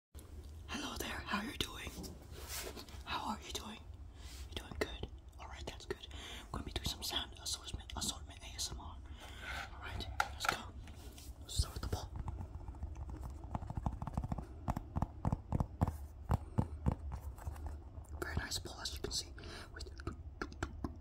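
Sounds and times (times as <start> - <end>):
low steady hum: 0.2 - 21.0
person whispering: 0.7 - 2.2, 3.0 - 12.4, 18.1 - 20.8.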